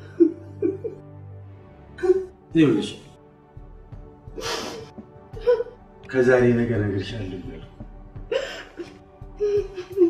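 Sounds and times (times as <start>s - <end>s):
woman crying: 0.0s - 1.1s, 2.0s - 2.4s, 4.3s - 6.0s, 8.3s - 10.0s.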